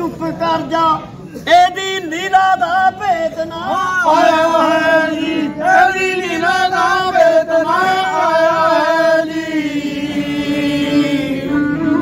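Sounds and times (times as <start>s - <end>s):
men singing a long held note: 2.2s - 12.0s.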